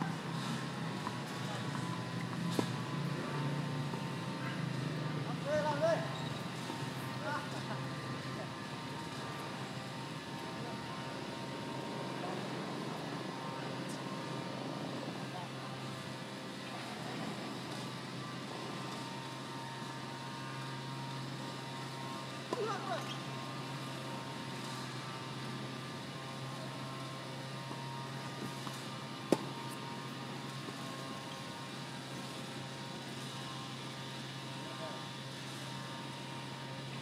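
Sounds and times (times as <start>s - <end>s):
faint knocks of tennis play: 28.4s - 29.7s
tennis ball struck: 28.5s - 29.7s.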